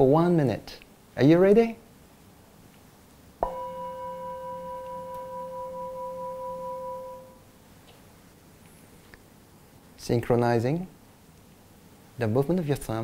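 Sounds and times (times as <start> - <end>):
singing bowl struck and ringing: 3.4 - 7.5.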